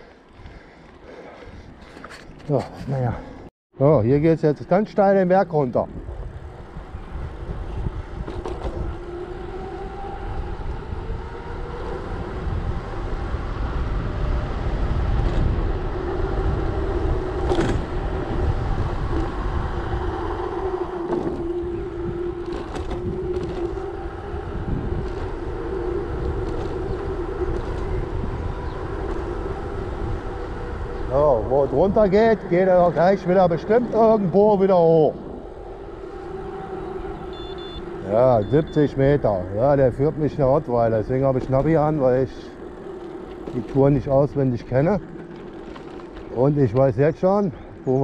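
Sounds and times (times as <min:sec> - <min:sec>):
bike humming: 0:00.0 - 0:04.1, 0:04.8 - 0:48.0
wind rumbling on microphone: 0:05.8 - 0:48.0.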